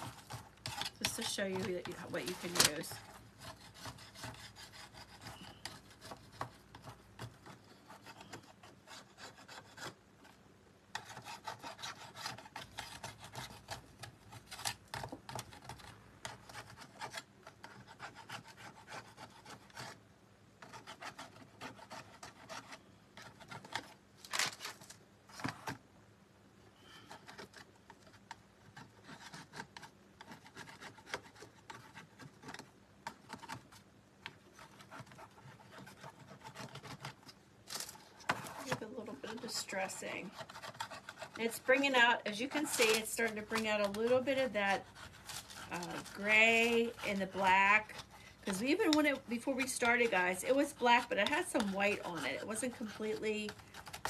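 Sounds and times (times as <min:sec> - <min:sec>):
hand scraper scraping paint: 0:00.0 - 0:10.0, 0:10.9 - 0:20.0, 0:20.6 - 0:23.9, 0:26.8 - 0:33.8, 0:34.5 - 0:37.3, 0:38.1 - 0:54.0.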